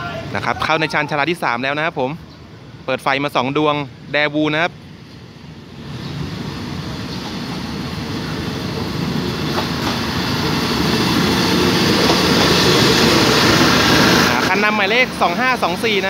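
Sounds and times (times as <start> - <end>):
diesel train passing: 0.0 - 16.0
train wheels on rails: 4.8 - 16.0.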